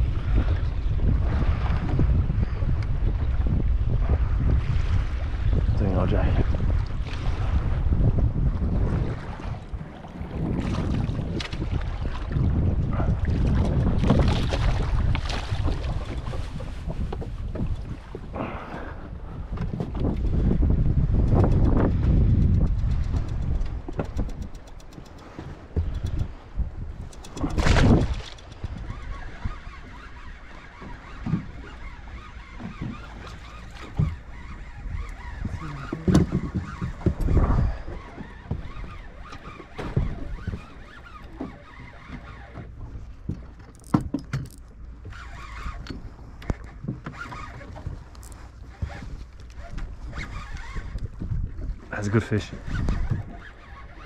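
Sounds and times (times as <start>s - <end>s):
water lapping against boat: 0.0s - 54.0s
wind buffeting microphone: 0.0s - 54.0s
knocks and handling noises: 43.4s - 44.7s.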